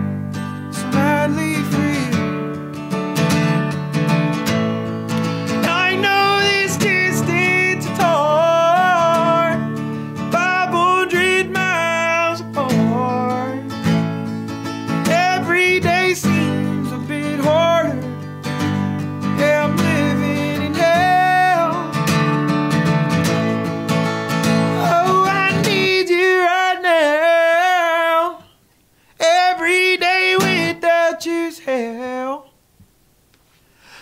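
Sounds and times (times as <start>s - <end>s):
strummed acoustic guitar: 0.0s - 32.4s
man singing: 0.7s - 2.5s, 5.5s - 14.0s, 14.9s - 22.3s, 24.7s - 28.5s, 29.2s - 32.6s.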